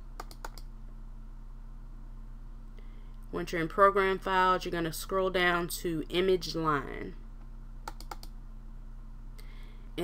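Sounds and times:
low electrical hum: 0.0s - 10.0s
computer mouse clicks: 0.2s - 0.7s, 7.8s - 8.4s.

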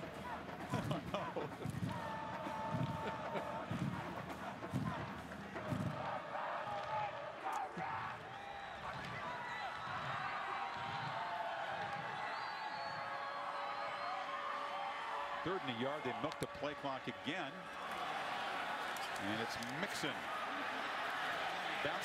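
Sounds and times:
stadium crowd noise: 0.0s - 22.0s.

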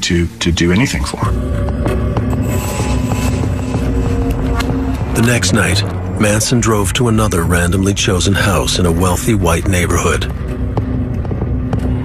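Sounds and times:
low rumbling music drone: 0.0s - 12.0s.

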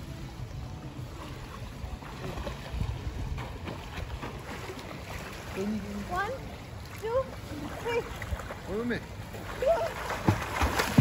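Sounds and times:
wind rumbling on microphone: 0.0s - 4.6s
faint swimmer splashing: 0.0s - 11.0s.

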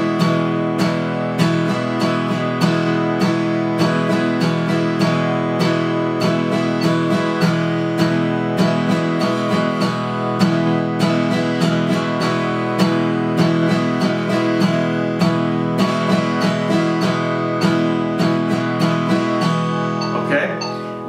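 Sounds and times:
acoustic guitar strummed: 0.0s - 21.0s
metronome ticking: 17.6s - 21.0s.

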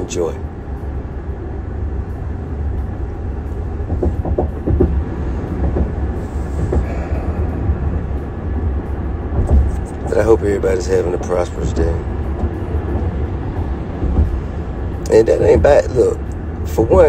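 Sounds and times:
vehicle road and engine rumble: 0.0s - 17.0s.

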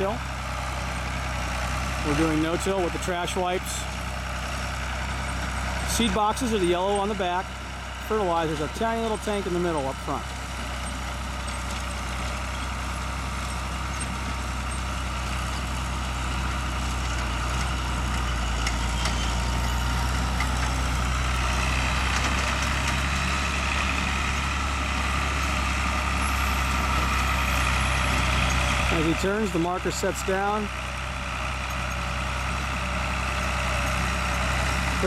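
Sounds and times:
tractor engine running: 0.0s - 35.0s.

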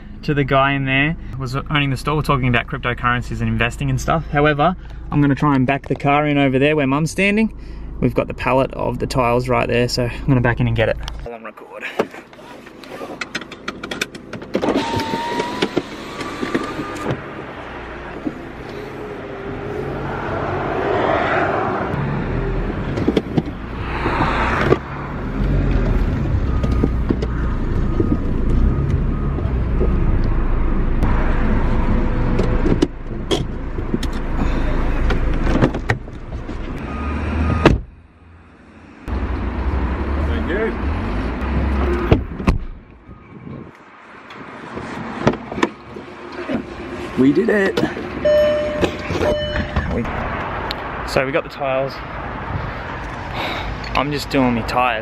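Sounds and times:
car engine rumbling: 0.0s - 55.0s
car warning beeps: 26.2s - 30.8s, 36.8s - 37.8s, 48.2s - 50.0s.

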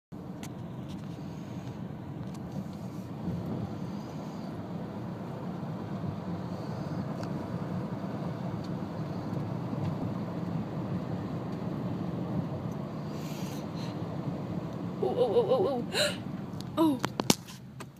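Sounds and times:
car engine rumble: 0.1s - 17.9s
tyres on asphalt: 0.1s - 17.9s.

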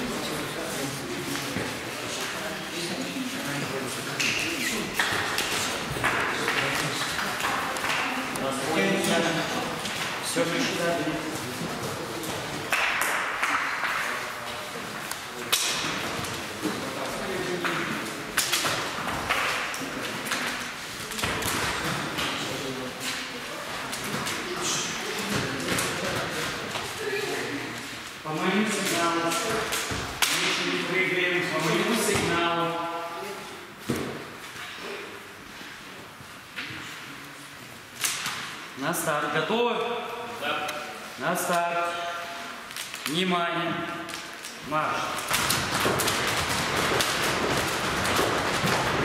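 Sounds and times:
students chattering: 0.0s - 37.9s
volleyballs hitting gym floor: 17.5s - 22.4s, 28.8s - 30.8s, 33.8s - 34.3s, 45.2s - 49.0s.

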